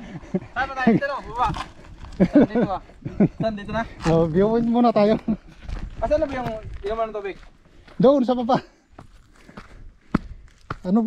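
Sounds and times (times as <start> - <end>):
footsteps on rocky dirt trail: 0.2 - 11.0.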